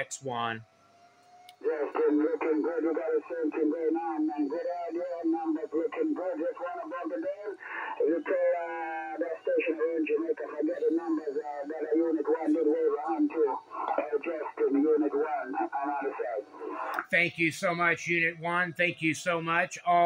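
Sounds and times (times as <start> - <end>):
person talking over radio: 0.0 - 0.6, 1.6 - 20.0.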